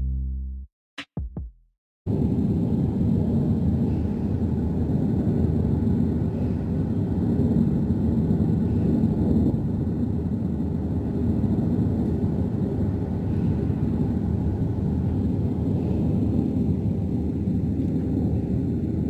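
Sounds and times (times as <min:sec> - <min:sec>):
wind on microphone: 0:02.1 - 0:19.0.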